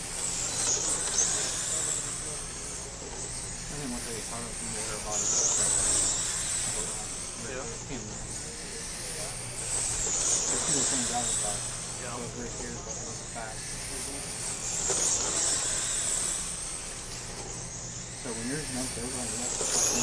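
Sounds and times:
rc car motor whine: 0.0s - 20.0s
faint voices: 0.7s - 20.0s.

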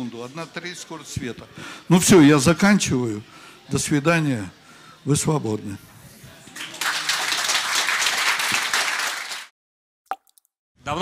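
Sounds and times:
audience applauding: 6.5s - 9.5s.

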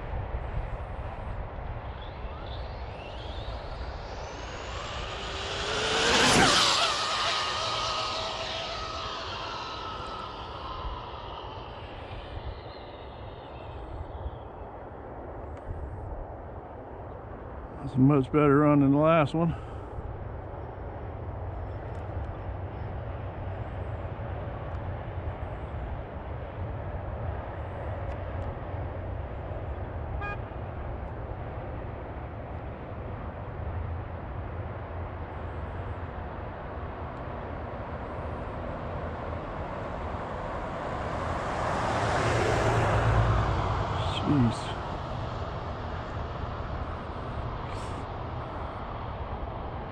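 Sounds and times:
low outdoor rumble: 0.0s - 49.9s
pickup truck passing: 1.8s - 14.4s, 35.6s - 49.9s.

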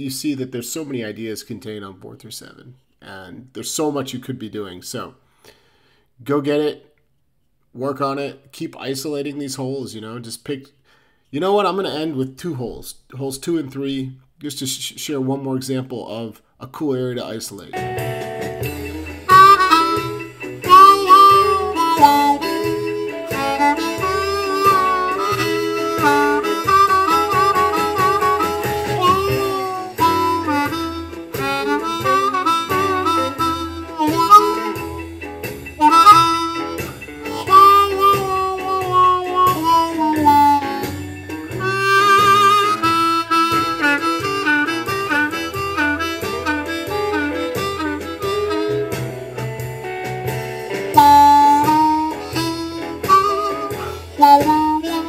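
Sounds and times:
blues harmonica bending notes: 17.8s - 55.0s
shuffle backing track with bass line: 17.8s - 55.0s.

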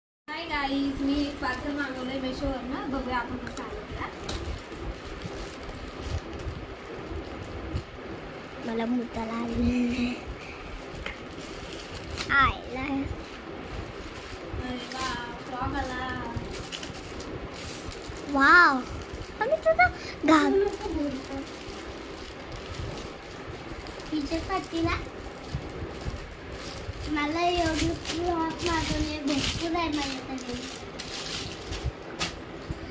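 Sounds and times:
plastic bag rustling and crinkling: 0.5s - 7.9s, 8.6s - 32.9s.

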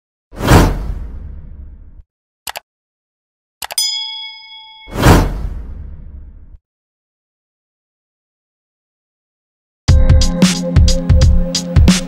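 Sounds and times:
whoosh sound effect: 4.8s - 6.0s.

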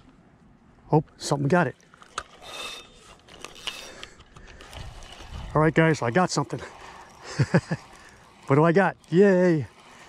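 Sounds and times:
fishing reel whirring: 1.9s - 10.0s.

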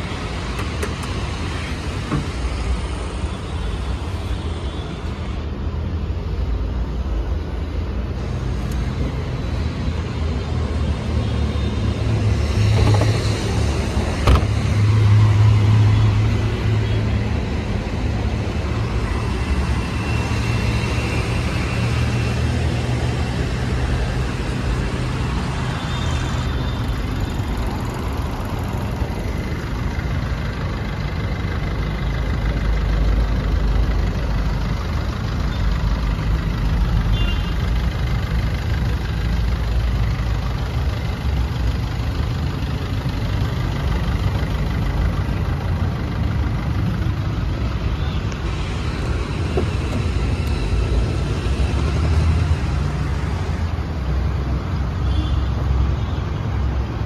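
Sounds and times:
road traffic rumble: 0.0s - 57.0s.

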